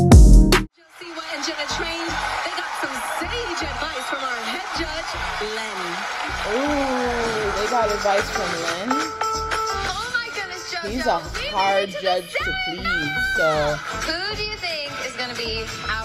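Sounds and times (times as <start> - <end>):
music with steady beat: 0.0 - 0.7, 6.4 - 16.0
voices: 0.8 - 9.1, 9.9 - 16.0
people clapping and cheering: 0.9 - 10.5, 11.4 - 16.0.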